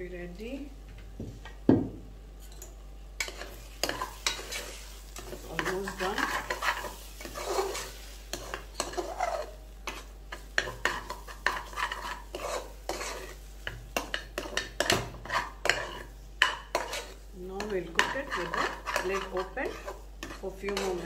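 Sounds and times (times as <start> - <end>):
metal spoon scraping a pot: 2.4 - 10.0, 10.6 - 21.0.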